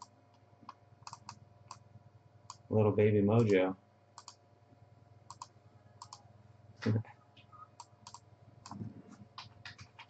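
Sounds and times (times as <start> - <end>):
computer clicking: 0.0 - 1.8, 3.4 - 4.4, 5.3 - 6.2, 7.7 - 10.0.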